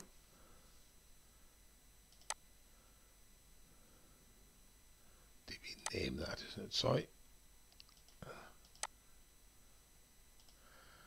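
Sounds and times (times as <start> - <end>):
computer mouse click: 2.1 - 2.4, 7.7 - 9.0, 10.4 - 10.6
man speaking quietly: 5.5 - 7.1.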